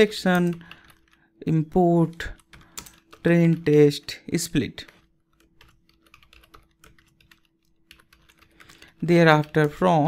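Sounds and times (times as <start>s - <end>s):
computer keyboard typing: 0.0s - 10.0s.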